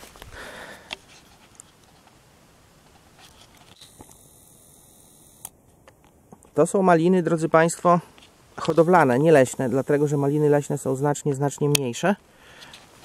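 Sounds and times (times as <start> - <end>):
leaves and grass rustling: 0.0 - 4.2, 6.4 - 13.0.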